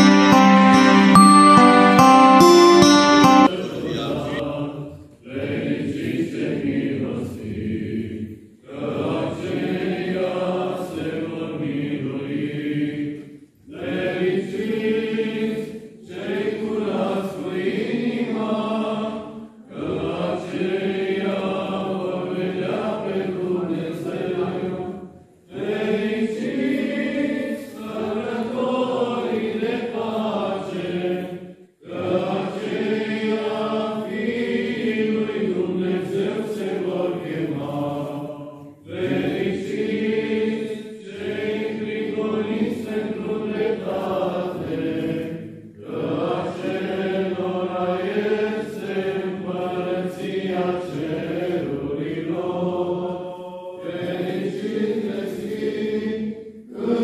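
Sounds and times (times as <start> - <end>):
choir chanting: 0.0 - 57.0.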